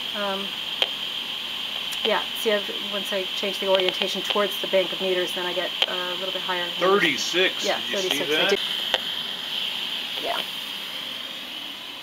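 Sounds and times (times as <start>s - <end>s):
steady hiss: 0.0s - 12.0s
person saying yeah: 6.8s - 8.6s.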